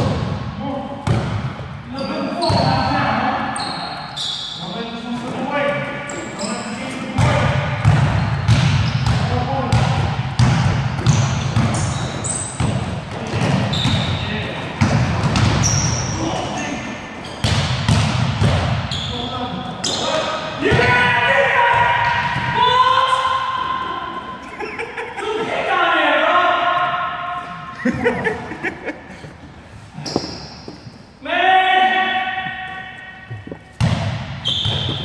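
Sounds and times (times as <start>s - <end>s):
basketball bouncing: 1.0s - 1.6s, 7.2s - 14.2s, 14.8s - 15.9s, 17.4s - 19.0s, 33.3s - 35.0s
sneakers squeaking: 1.0s - 21.0s, 29.0s - 31.2s, 32.2s - 35.0s.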